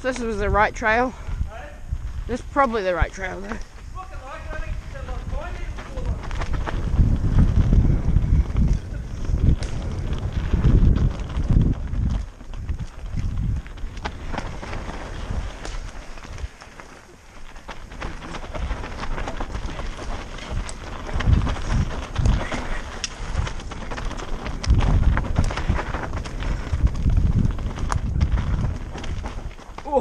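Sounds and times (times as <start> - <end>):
bike clicking and rattling: 0.0 - 30.0
bike tyres running over dirt: 0.0 - 30.0
wind buffeting microphone: 0.0 - 30.0.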